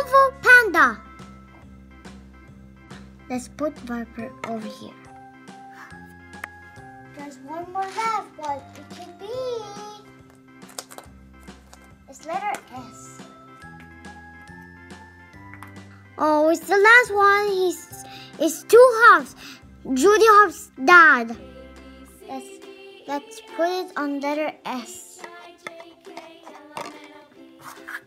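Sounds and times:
soft background music: 0.0s - 28.0s
plastic egg clicking open: 10.3s - 11.9s, 25.2s - 27.2s
plastic toy clicking on paper cup: 25.2s - 28.0s.

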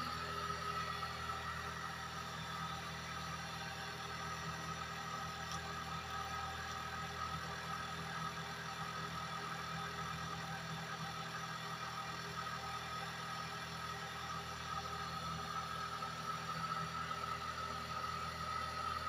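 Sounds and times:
steady hum with faint whine: 0.0s - 19.0s.

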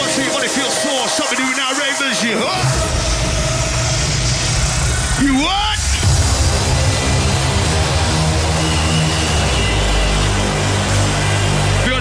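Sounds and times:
mc vocals: 0.0s - 6.1s
electronic dance music: 0.0s - 12.0s
heavy bass line: 2.6s - 12.0s.

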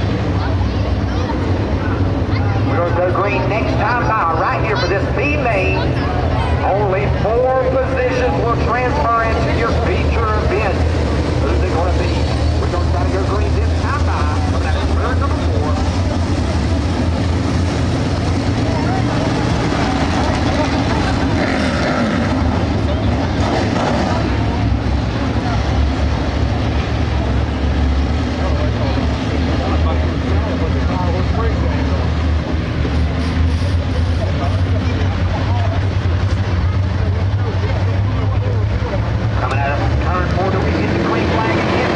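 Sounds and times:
race car engines droning: 0.0s - 41.9s.

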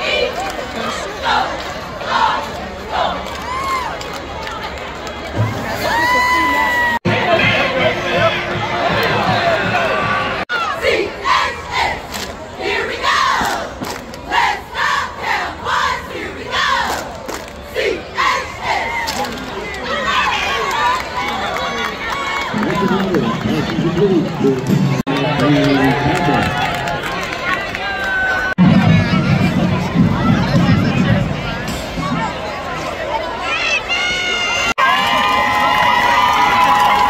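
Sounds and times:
crowd cheering and calling out: 0.0s - 37.0s
cheer squad shouting in unison: 10.5s - 13.7s, 14.3s - 17.1s, 17.7s - 19.1s.

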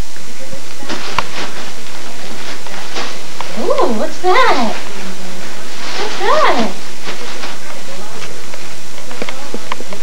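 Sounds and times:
tissue paper crackling: 0.8s - 8.4s.

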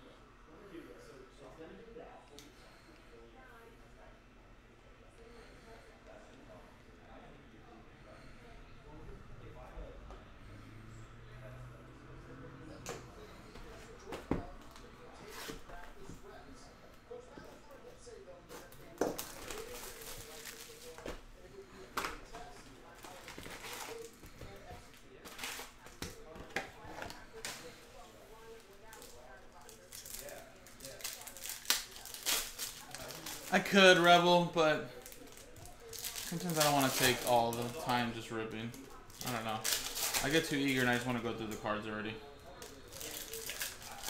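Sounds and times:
foil wrappers crinkling and tearing: 18.6s - 21.2s, 22.4s - 27.8s, 28.4s - 41.3s, 42.5s - 44.0s.

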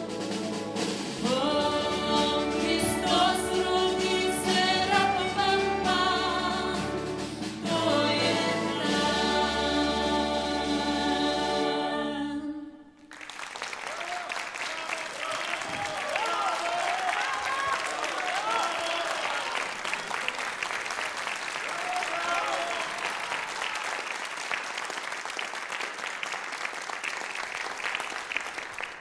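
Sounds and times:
audience applauding: 13.0s - 29.0s.

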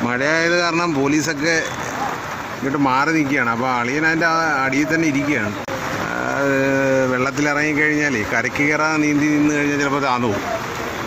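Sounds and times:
man talking: 0.0s - 1.8s, 2.6s - 10.6s
rain hiss: 0.0s - 11.0s
traffic: 0.0s - 11.0s.

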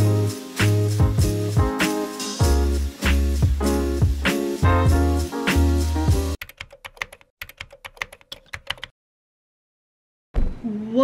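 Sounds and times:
upbeat music with heavy bass: 0.0s - 6.4s
keyboard typing clicks: 6.4s - 8.9s.

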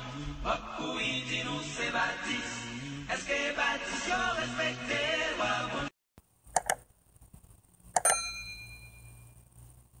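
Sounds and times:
mouse click: 6.5s - 6.8s
notification bell ding: 8.0s - 9.3s.

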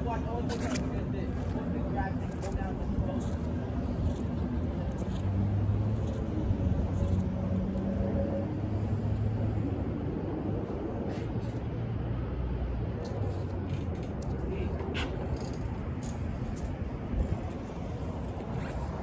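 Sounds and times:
traffic engine hum: 0.0s - 19.0s.

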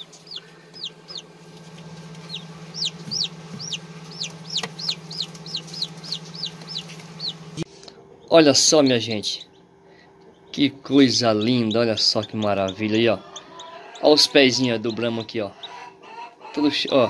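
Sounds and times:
chicks peeping: 0.0s - 17.0s
steady low hum: 0.0s - 17.0s.

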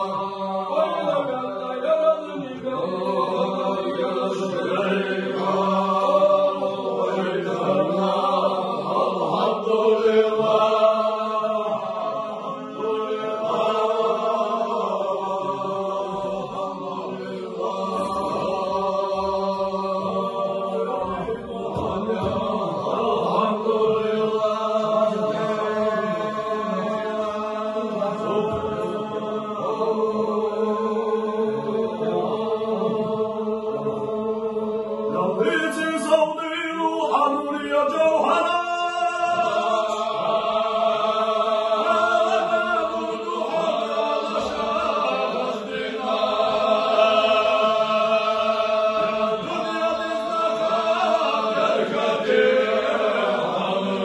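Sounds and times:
men chanting together: 0.0s - 54.0s.

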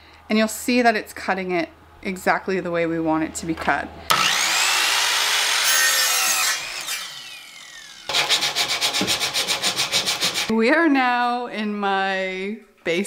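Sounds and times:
miter saw cutting wood: 4.1s - 10.5s
quick rhythmic rubbing: 8.1s - 10.5s.

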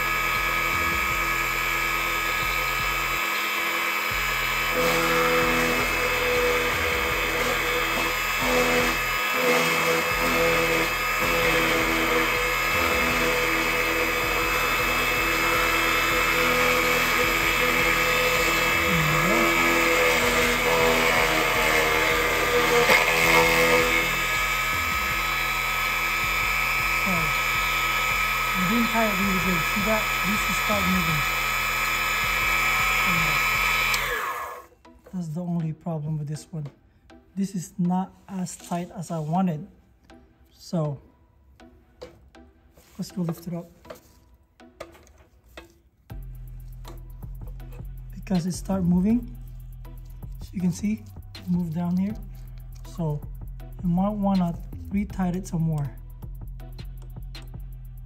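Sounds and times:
key cutting machine running: 0.0s - 34.7s.

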